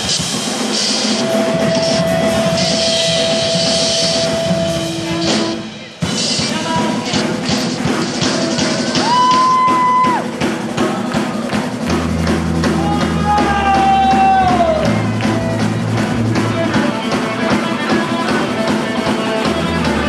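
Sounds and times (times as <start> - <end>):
ska band playing: 0.0 - 20.0
held melody note: 1.0 - 6.2.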